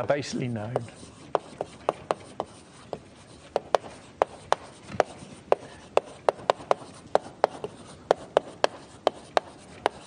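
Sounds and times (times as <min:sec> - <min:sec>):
chalk writing on blackboard: 0:00.0 - 0:10.0.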